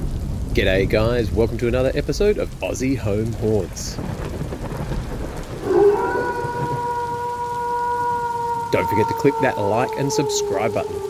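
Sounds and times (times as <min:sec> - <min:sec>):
low thunder rumble: 0:00.0 - 0:11.0
rain: 0:00.0 - 0:11.0.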